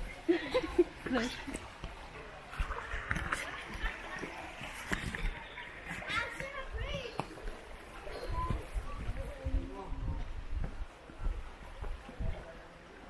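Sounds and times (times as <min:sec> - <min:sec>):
shallow stream rushing: 0:01.4 - 0:08.8
footsteps on dirt path: 0:10.2 - 0:12.4.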